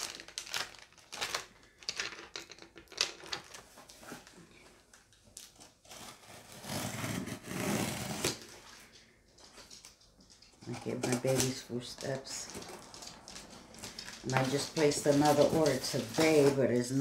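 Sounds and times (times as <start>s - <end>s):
packaging scraping: 0.0s - 4.4s
packaging rustling and clicking: 0.0s - 6.0s, 8.1s - 17.0s.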